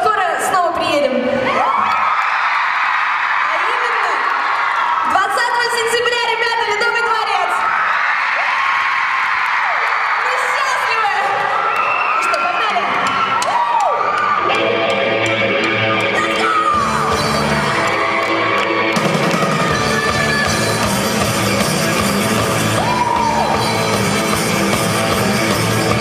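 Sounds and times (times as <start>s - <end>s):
audience screaming: 1.3s - 5.3s, 7.4s - 26.0s
live rock band playing: 14.4s - 26.0s.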